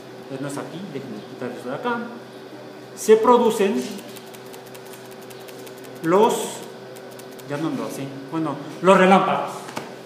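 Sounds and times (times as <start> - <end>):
low electrical hum: 0.0 - 10.0
faint rapid irregular ticking: 3.8 - 6.2, 7.0 - 7.5.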